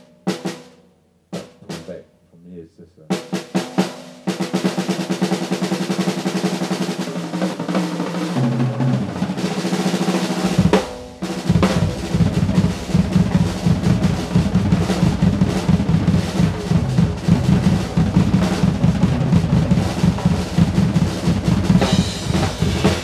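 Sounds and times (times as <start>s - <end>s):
snare drum rolls: 1.4s - 2.0s, 3.1s - 23.0s
bass drum: 10.3s - 23.0s.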